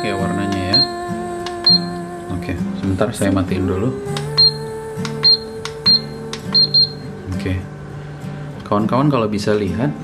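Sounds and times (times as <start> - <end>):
soft background music: 0.0 - 10.0
short high beeps: 1.7 - 1.9, 5.2 - 7.1.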